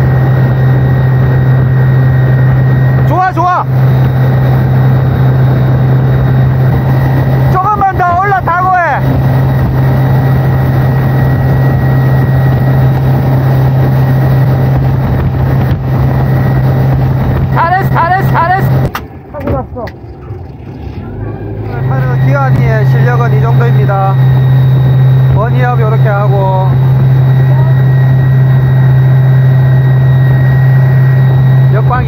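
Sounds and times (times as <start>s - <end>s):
boat engine running: 0.0s - 32.0s.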